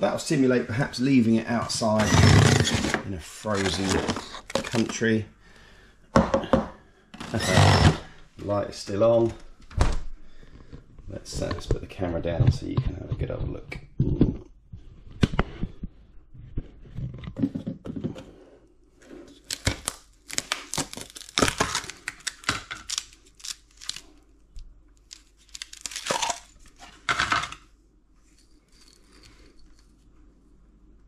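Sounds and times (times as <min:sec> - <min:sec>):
plastic and ice crackling: 0:01.6 - 0:05.2, 0:19.0 - 0:24.3, 0:25.0 - 0:27.7.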